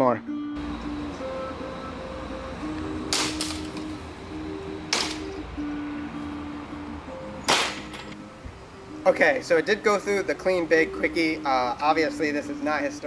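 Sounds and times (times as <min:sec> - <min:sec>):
background music: 0:00.0 - 0:13.0
sword chopping into wooden pole: 0:03.1 - 0:03.7, 0:04.9 - 0:05.2, 0:07.5 - 0:08.1.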